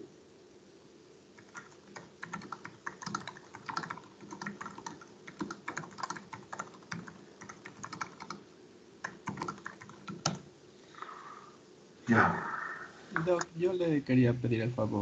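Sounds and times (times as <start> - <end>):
typing on keyboard: 1.4 - 8.4, 9.0 - 10.5.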